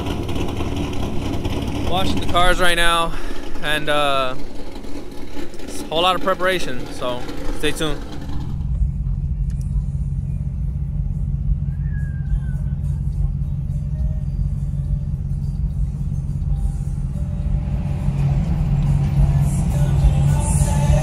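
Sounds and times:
vehicle driving low rumble: 0:00.0 - 0:21.0.

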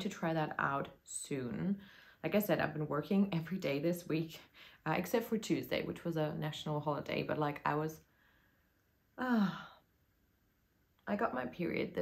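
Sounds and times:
woman sighing: 0:09.2 - 0:09.9.

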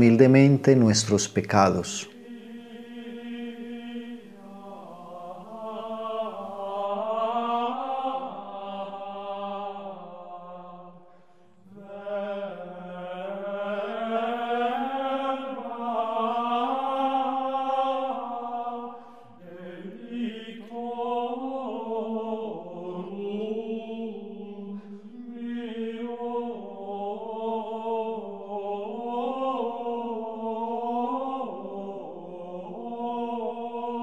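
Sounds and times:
meditative chant-like music: 0:00.0 - 0:34.0.

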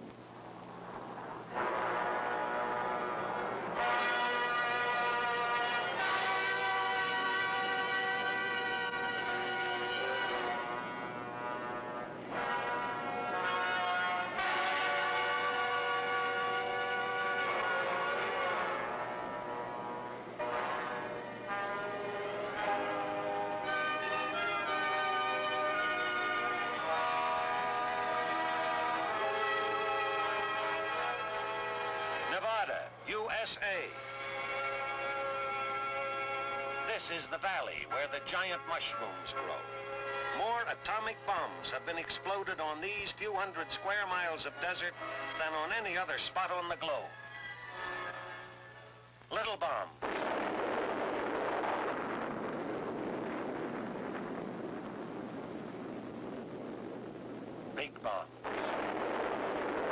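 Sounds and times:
bomb blast rumbling roar: 0:50.0 - 0:57.2, 0:58.4 - 0:59.9.

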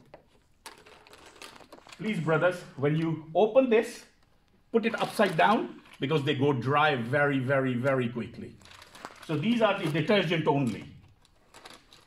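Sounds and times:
plastic packaging clicks and rustles: 0:00.0 - 0:03.1, 0:04.0 - 0:06.3, 0:07.7 - 0:12.0.

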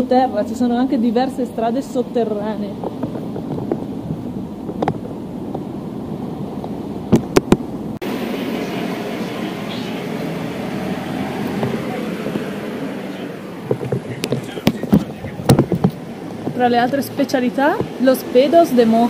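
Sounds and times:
city street murmur: 0:00.0 - 0:19.0
hissy hum: 0:05.9 - 0:16.7.

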